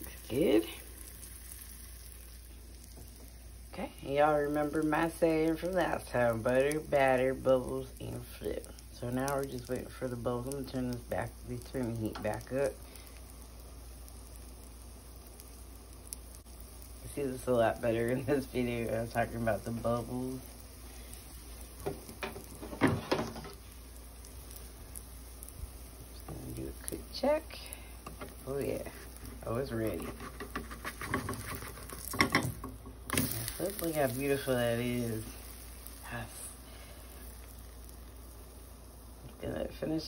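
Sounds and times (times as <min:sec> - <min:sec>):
batter sizzling in a frying pan: 0:00.0 - 0:40.0
spatula scraping a frying pan: 0:28.0 - 0:34.2.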